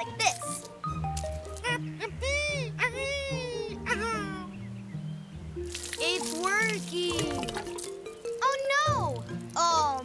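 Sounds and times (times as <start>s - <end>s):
cartoon background music: 0.0s - 10.0s
watery whoosh: 5.7s - 7.9s.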